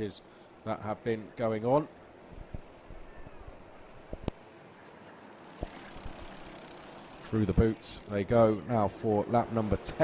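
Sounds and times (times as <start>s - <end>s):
distant kart engines: 1.2s - 10.0s.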